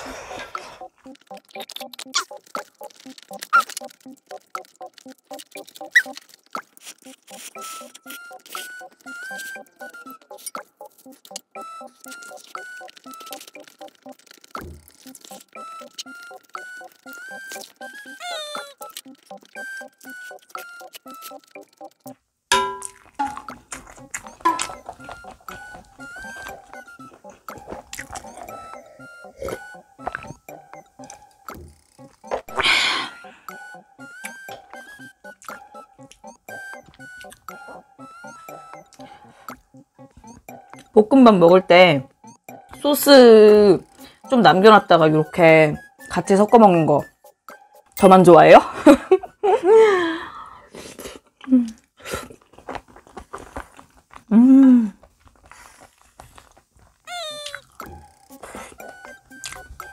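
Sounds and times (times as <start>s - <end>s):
eating sounds: 0.0s - 22.1s, 22.8s - 41.0s, 50.3s - 59.9s
light cute background music: 0.0s - 59.9s.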